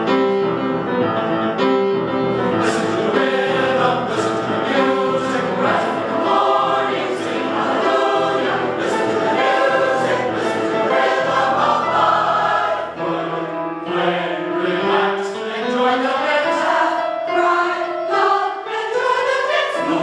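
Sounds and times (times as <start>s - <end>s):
mixed choir singing: 2.4s - 20.0s.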